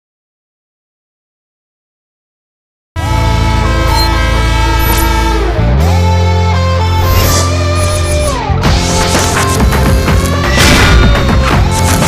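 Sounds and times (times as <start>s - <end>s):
horn-like title jingle: 3.0s - 8.9s.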